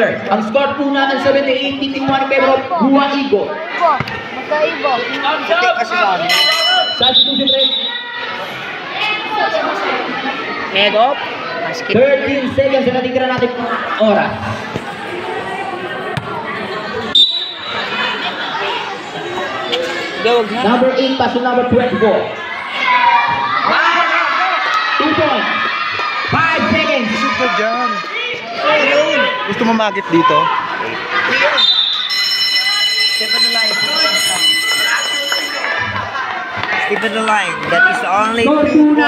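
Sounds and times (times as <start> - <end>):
crowd chatter: 0.0 - 39.0
basketball bouncing on concrete: 16.1 - 16.4.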